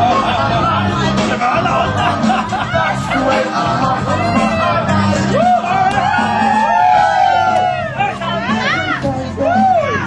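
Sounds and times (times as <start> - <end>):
bass line: 0.0 - 10.0
live band playing disco: 0.0 - 10.0.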